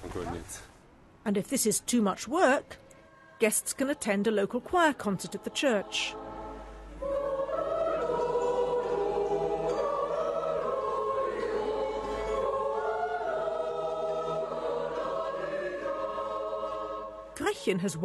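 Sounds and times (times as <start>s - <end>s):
mixed choir singing: 3.0s - 18.0s.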